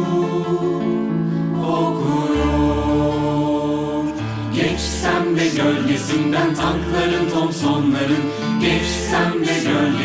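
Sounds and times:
vocal ensemble singing in harmony: 0.0 - 10.0.

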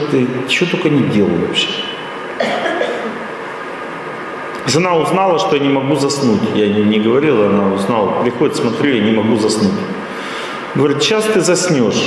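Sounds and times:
background hum: 0.0 - 12.0
person coughing: 2.4 - 3.2.

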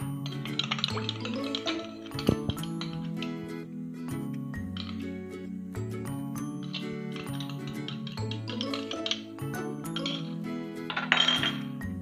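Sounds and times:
spoon clinking on glass bowls: 0.0 - 3.2, 4.8 - 5.1, 6.4 - 11.8
background music sustained notes: 0.0 - 12.0.

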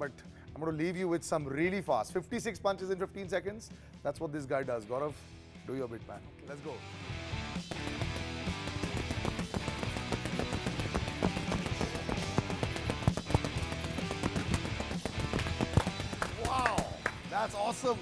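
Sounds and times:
background music: 0.0 - 18.0
punches thudding on punching bag: 7.7 - 16.6.

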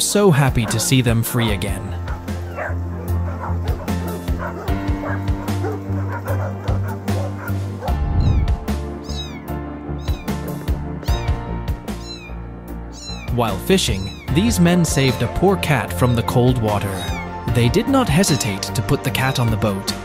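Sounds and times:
background music: 0.0 - 20.0
dogs barking: 0.3 - 11.4, 15.8 - 17.4
cat meowing: 3.4 - 14.3, 16.9 - 17.3.

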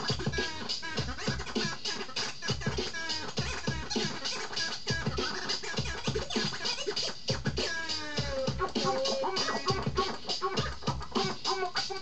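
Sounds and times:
drum beat with heavy kick: 0.0 - 12.0
turntable scratching: 0.0 - 12.0.

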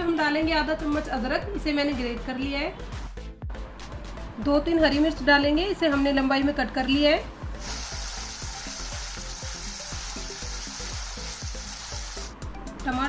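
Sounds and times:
paste sizzling in hot oil: 7.6 - 12.4.

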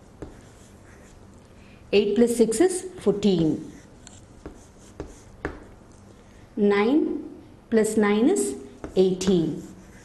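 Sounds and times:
chalk tapping: 0.0 - 1.2, 3.2 - 5.8, 8.8 - 10.0
chalk scraping on chalkboard: 0.2 - 1.2, 3.4 - 5.7, 8.8 - 10.0.

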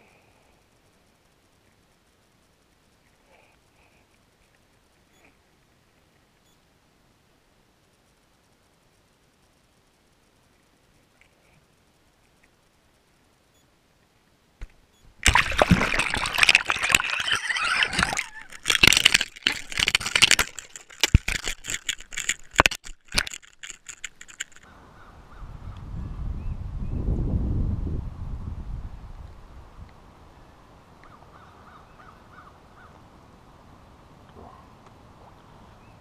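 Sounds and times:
water splashing around camera housing: 14.6 - 24.6.

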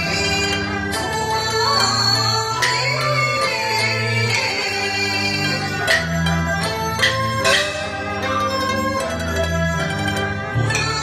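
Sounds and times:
traditional ensemble plucked strings: 0.0 - 11.0.

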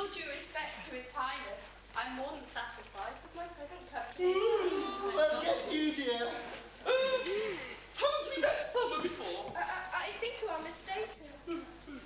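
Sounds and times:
person hooting ooh: 4.2 - 5.7, 6.8 - 7.8.

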